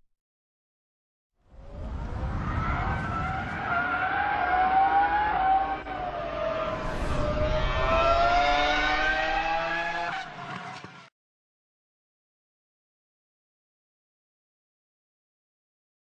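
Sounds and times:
racing car engine revving: 1.6 - 11.1.

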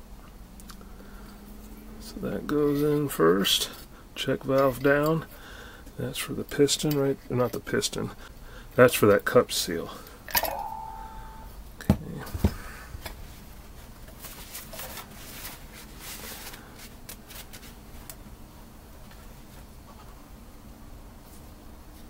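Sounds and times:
brief tone: 10.3 - 11.6
rustling: 13.2 - 18.1.

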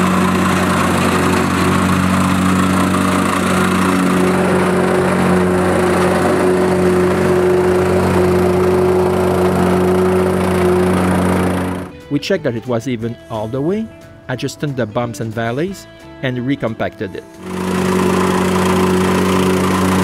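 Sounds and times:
plate compactor engine running: 0.0 - 12.0, 17.3 - 20.0.

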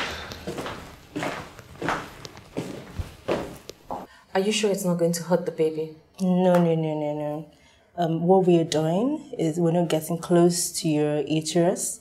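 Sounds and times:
footsteps walking: 0.0 - 4.1.

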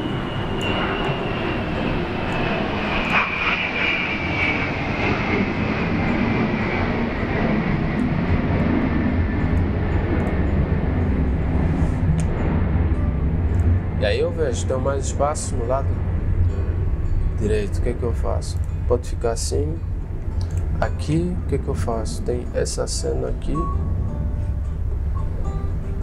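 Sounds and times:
high whine falling in pitch: 0.0 - 26.0
mechanical rumble: 0.0 - 26.0.

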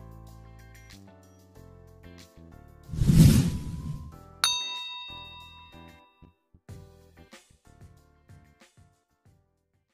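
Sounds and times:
bright chime ding: 4.4 - 6.0.

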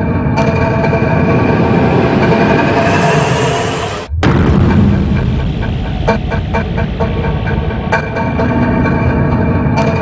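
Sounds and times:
rising whine: 0.0 - 6.2
rumbling drone with held tones: 0.0 - 9.8.

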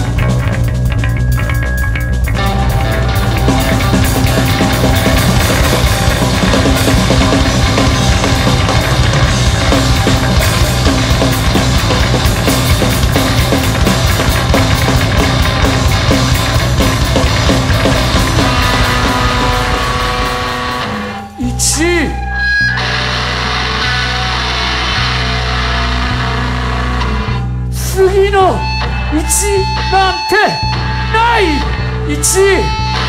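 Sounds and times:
drum kit driving pattern: 0.0 - 22.1, 27.9 - 33.0
electric guitar: 0.0 - 33.0
heavy bass: 0.0 - 33.0
loud distorted rock band: 0.0 - 33.0.

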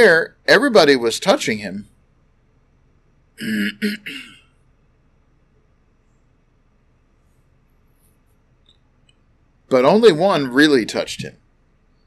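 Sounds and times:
man clearing his throat: 3.4 - 4.5.

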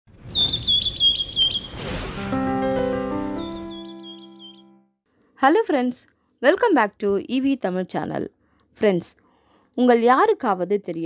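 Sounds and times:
cartoon bird tweet whistle: 0.3 - 1.8, 3.4 - 4.8.

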